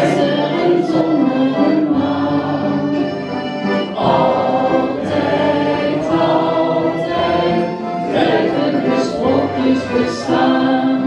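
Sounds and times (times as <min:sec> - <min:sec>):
folk ensemble of concertinas: 0:00.0 - 0:11.0.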